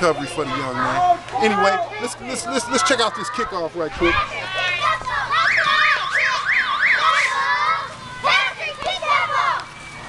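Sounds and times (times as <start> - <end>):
spectators shouting and cheering: 0.0 - 10.0
siren-like wail: 5.3 - 7.7.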